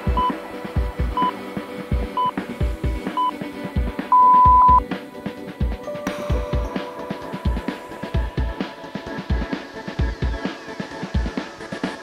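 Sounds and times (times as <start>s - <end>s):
electronic music with steady beat: 0.0s - 12.0s
short high timer beeps: 4.2s - 4.8s.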